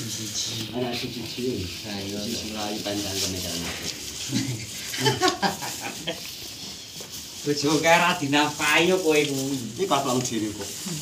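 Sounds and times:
bull chewing and tearing grass: 0.0 - 11.0.

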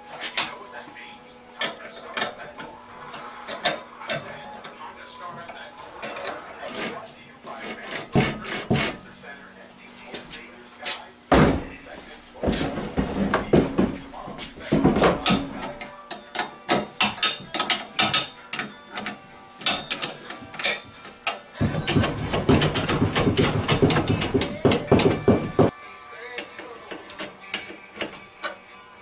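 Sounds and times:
metal clanks and clicks: 12.4 - 25.6.

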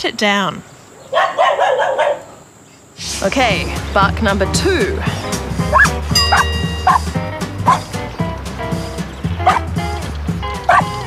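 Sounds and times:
dog barking: 1.0 - 2.4, 5.7 - 7.0, 9.4 - 9.7, 10.7 - 11.0
background music with low beat: 3.0 - 11.0.

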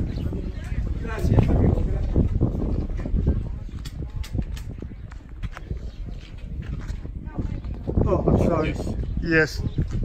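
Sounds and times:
faint voices: 0.0 - 10.0
wind rumble on microphone: 0.0 - 10.0
footsteps: 0.6 - 8.1.

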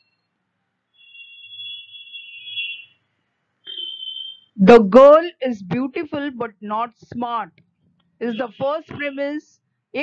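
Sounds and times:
high-pitched electronic tone: 3.7 - 4.5.

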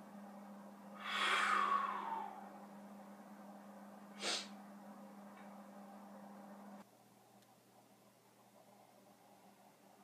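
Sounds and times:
person sighing: 1.0 - 2.4.

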